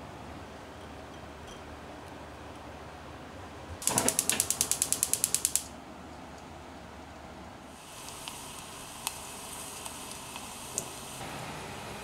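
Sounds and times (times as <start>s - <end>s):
gas igniter clicking rapidly: 3.8s - 5.7s, 7.9s - 11.2s.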